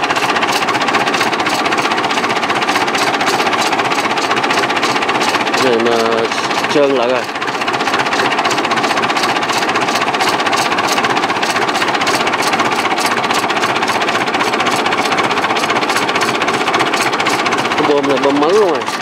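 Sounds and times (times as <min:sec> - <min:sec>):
diesel tractor engine idling: 0:00.0 - 0:19.0.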